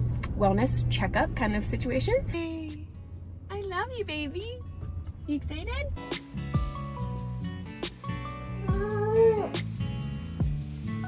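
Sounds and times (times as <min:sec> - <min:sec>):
background music with steady beat: 0:02.3 - 0:11.0
baby squealing: 0:08.6 - 0:09.6.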